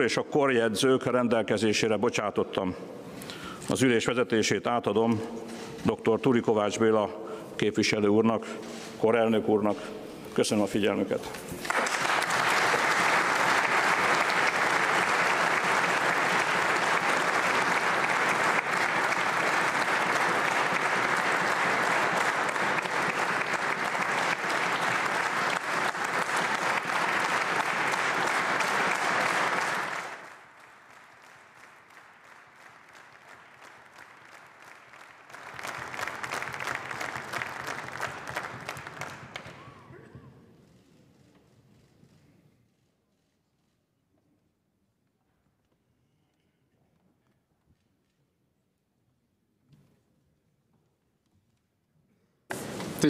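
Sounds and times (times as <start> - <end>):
applause: 11.6 - 39.9.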